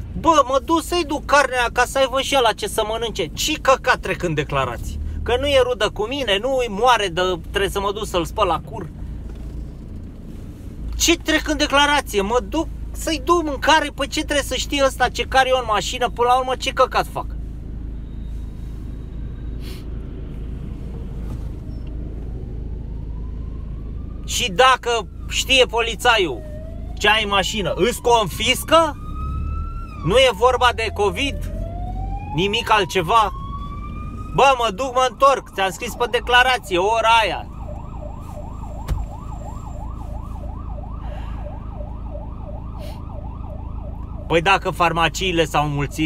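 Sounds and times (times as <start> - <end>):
traffic rumble inside car: 0.0 - 46.0
emergency siren yelping: 21.7 - 46.0.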